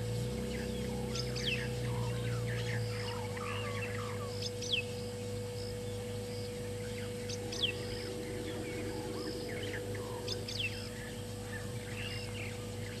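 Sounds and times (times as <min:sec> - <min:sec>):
soft bird chirps: 0:00.0 - 0:13.0.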